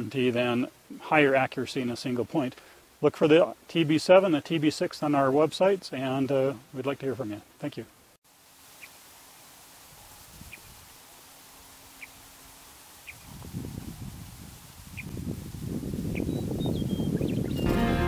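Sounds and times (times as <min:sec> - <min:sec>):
wind buffeting microphone: 0:10.2 - 0:10.9, 0:13.1 - 0:17.7
music: 0:17.6 - 0:18.0.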